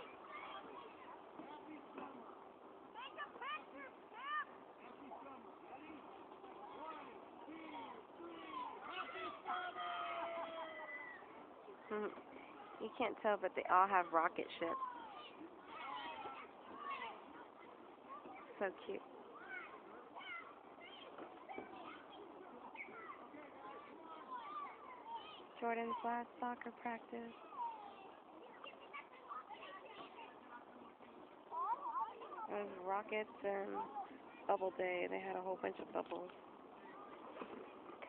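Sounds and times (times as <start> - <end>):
distant children's voices: 0.0 - 13.0, 14.6 - 26.3, 27.2 - 34.5, 36.3 - 38.0
distant children calling and squealing: 7.7 - 12.8, 19.3 - 25.5.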